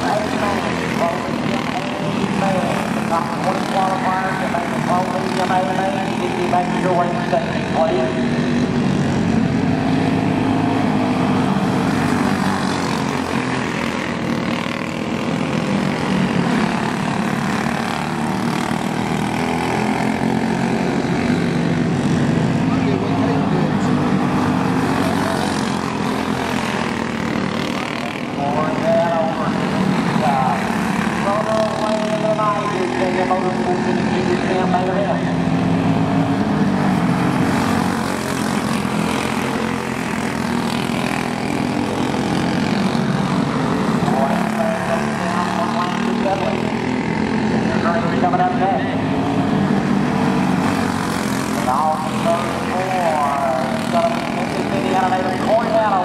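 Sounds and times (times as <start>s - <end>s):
kart engines racing: 0.0s - 56.0s.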